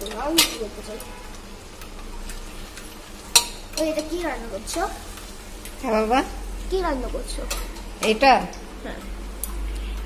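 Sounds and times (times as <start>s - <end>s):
low sizzle: 0.0s - 10.0s.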